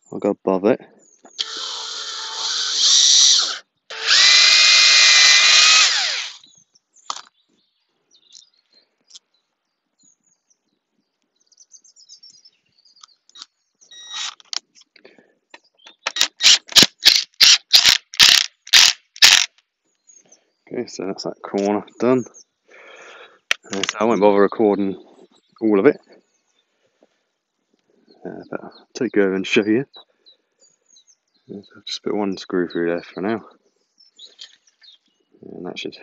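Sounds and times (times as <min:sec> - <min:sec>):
cordless drill boring wood: 0:01.4 - 0:06.4
cordless driver screwing in bursts: 0:01.4 - 0:06.4, 0:16.0 - 0:19.5.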